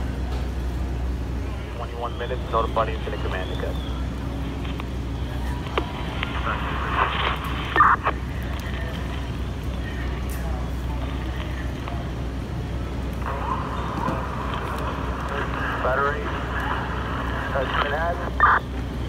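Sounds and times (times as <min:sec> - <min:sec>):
low engine hum: 0:00.0 - 0:19.0
voices: 0:00.0 - 0:19.0.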